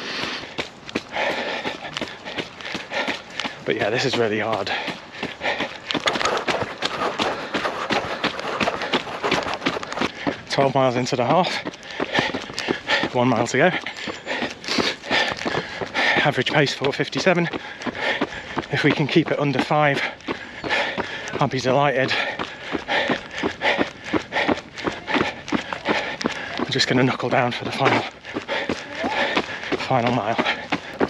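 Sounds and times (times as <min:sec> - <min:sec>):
runner's heavy breathing: 0:00.0 - 0:31.0
running footfalls: 0:00.0 - 0:31.0.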